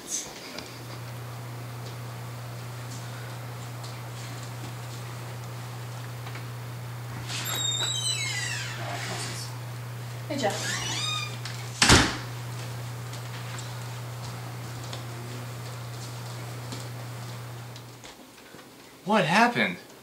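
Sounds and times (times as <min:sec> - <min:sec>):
steady low hum: 0:00.3 - 0:18.0
door hinges squealing: 0:07.2 - 0:09.5, 0:10.4 - 0:12.0.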